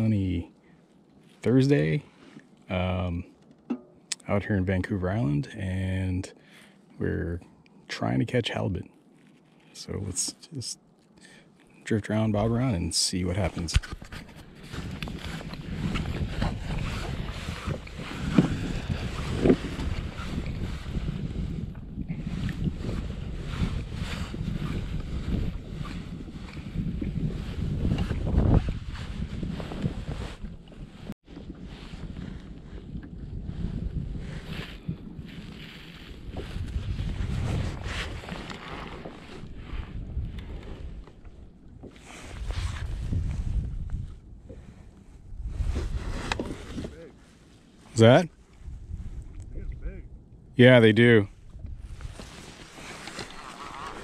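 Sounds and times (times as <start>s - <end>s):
wind buffeting microphone: 13.4s - 54.0s
water lapping against hull: 14.2s - 49.5s, 51.3s - 54.0s.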